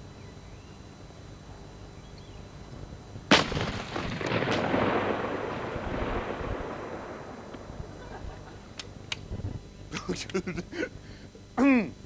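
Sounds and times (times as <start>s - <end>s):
loud rifle shot: 3.3s - 7.5s.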